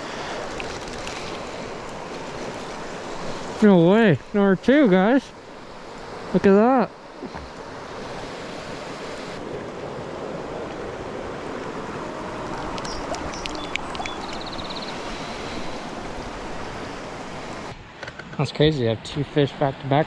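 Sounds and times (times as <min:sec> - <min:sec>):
water running over rocks: 0:00.0 - 0:06.5, 0:11.4 - 0:17.7.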